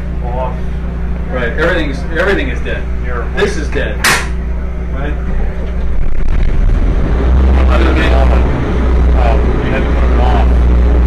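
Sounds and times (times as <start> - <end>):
generator engine droning: 0.0 - 11.0.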